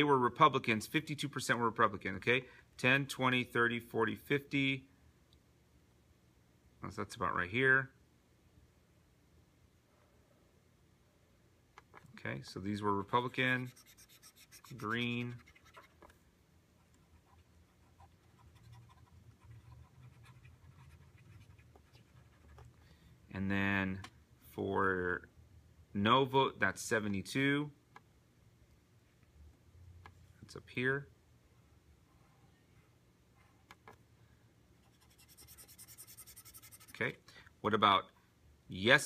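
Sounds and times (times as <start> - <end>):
low room hum: 0.0 - 39.0
stylus scratching on drawing tablet: 13.0 - 16.1, 16.8 - 22.7, 34.8 - 37.0.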